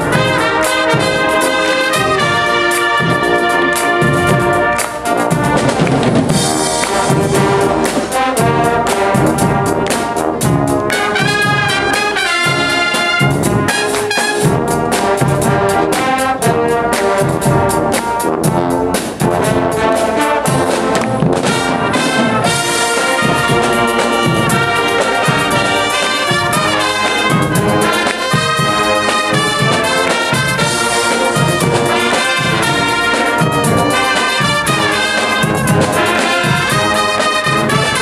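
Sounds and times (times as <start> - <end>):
brass band playing: 0.0 - 38.0
marching drums: 0.0 - 38.0.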